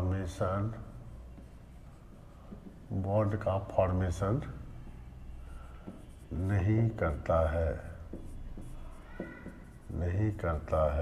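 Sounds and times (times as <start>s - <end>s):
marker scratching on whiteboard: 0.0s - 4.6s, 5.3s - 11.0s.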